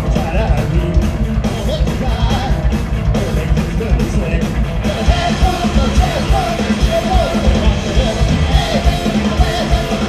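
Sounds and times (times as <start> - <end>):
bass guitar: 0.0 - 10.0
drums: 0.0 - 10.0
electric guitar: 0.0 - 10.0
man singing into a microphone: 0.0 - 10.0.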